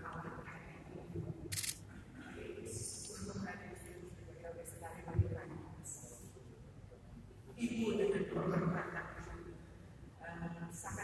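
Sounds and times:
camera shutter click: 1.5s - 1.8s.

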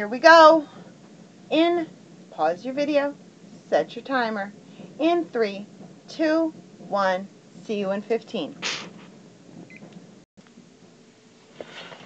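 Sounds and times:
low room hiss: 0.0s - 12.0s.

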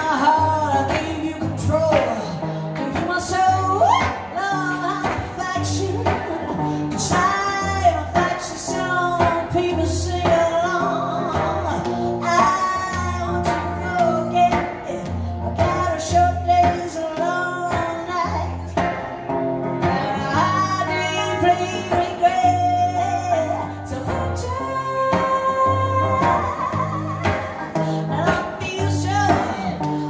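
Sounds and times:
electric guitar: 0.0s - 30.0s
woman singing into a microphone: 0.0s - 30.0s.

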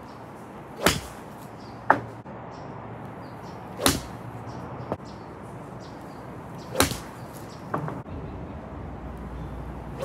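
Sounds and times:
golf club striking ball: 3.8s - 4.2s.

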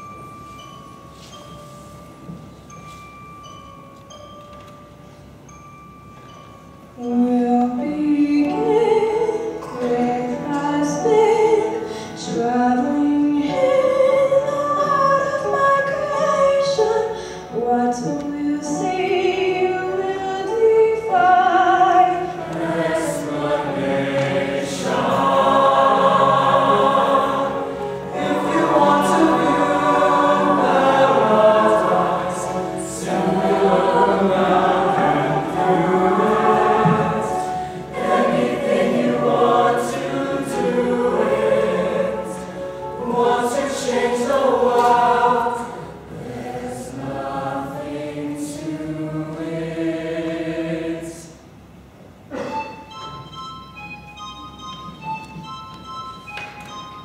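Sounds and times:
mixed choir singing in harmony: 7.0s - 51.5s.

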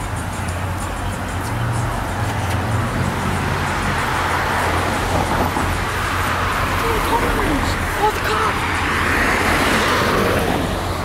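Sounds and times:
passing road traffic: 0.0s - 11.0s.

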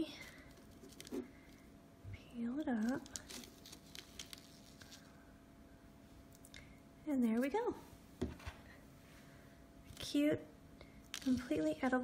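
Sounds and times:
parchment paper crinkling: 0.0s - 1.6s, 2.6s - 5.2s, 11.1s - 12.0s.

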